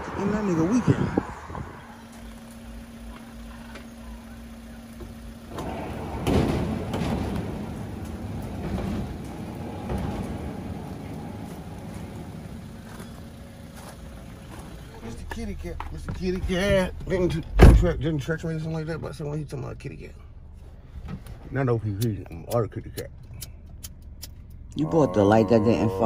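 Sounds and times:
sliding gate rattling: 5.5 - 12.5
gate rolling on track: 5.5 - 13.2
low hum: 23.1 - 26.0.

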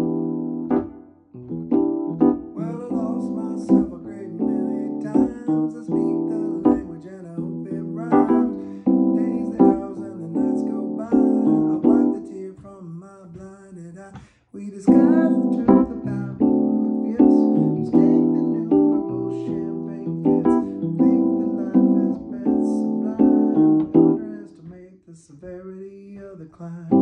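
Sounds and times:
digital piano chords: 0.0 - 13.0, 14.7 - 24.7.

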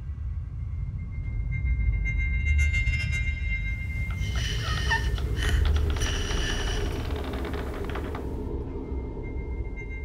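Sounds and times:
low rumbling drone: 3.6 - 10.0
rasping breath-like hissing: 4.1 - 8.2.

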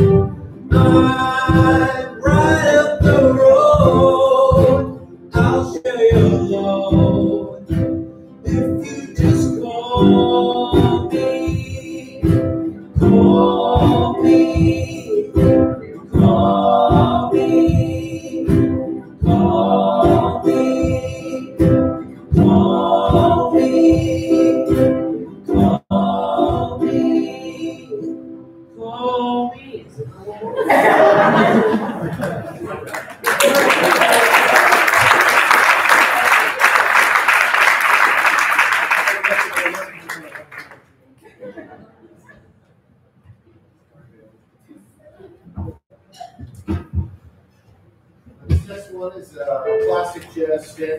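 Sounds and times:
strummed acoustic guitar: 0.0 - 28.2
person singing: 0.7 - 29.6.

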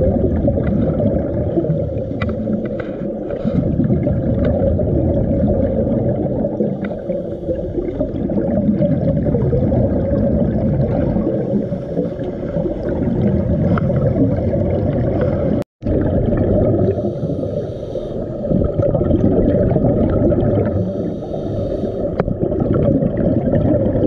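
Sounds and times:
scuba exhaled bubbles: 0.0 - 24.0
underwater rumble and gurgle: 0.0 - 24.0
faint clicks: 2.1 - 3.1.

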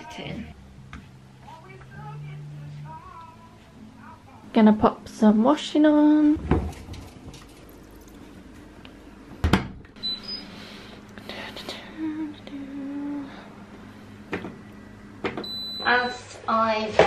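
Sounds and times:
low steady hum: 0.0 - 17.0
washing machine door thud: 9.4 - 9.8
short electronic beeps: 10.0 - 10.5.

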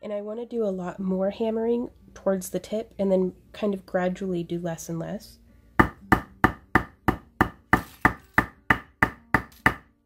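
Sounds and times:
hammer tapping metal wire: 5.8 - 9.9.

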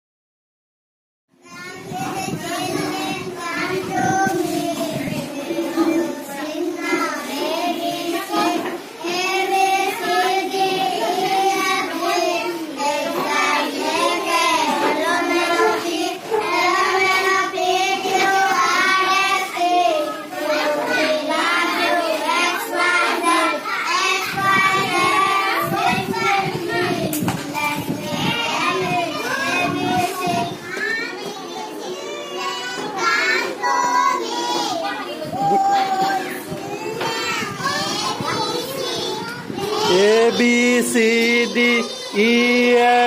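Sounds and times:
children singing in unison: 1.4 - 43.0.

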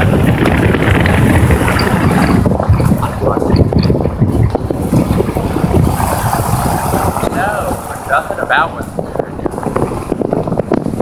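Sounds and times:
road and vehicle noise: 0.0 - 11.0
wind buffeting microphone: 0.0 - 11.0.

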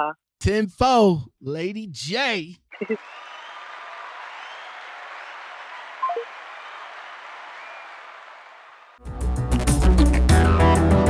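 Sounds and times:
applause: 2.0 - 9.0.

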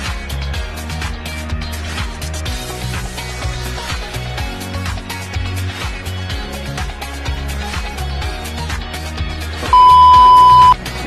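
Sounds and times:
background music: 0.0 - 11.0
loud electronic beep: 9.7 - 10.8.

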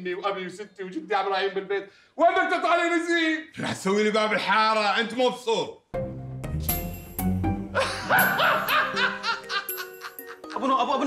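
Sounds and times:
background music: 5.9 - 11.0.

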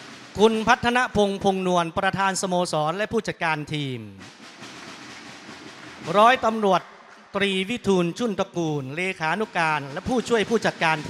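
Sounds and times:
hiss-like sports hall room noise: 0.0 - 0.4.

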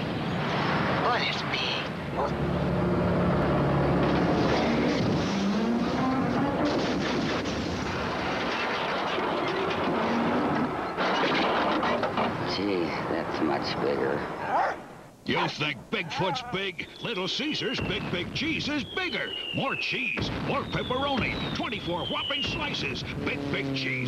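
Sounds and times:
monster truck engines revving: 2.0 - 12.6, 20.7 - 24.0
metal crunching and crackling: 3.9 - 12.6.

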